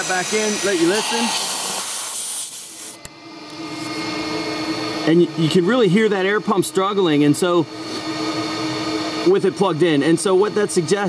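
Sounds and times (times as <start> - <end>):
electric air pump humming: 0.0 - 11.0.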